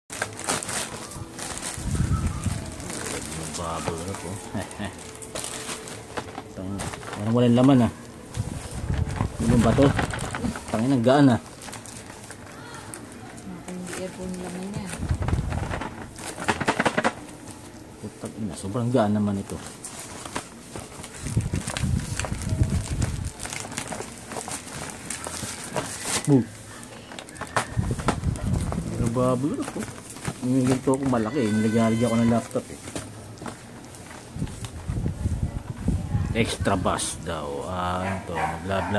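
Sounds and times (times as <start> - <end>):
plastic-wrapped box handling: 0.1 - 35.8
plastic packaging rustling: 0.1 - 38.9.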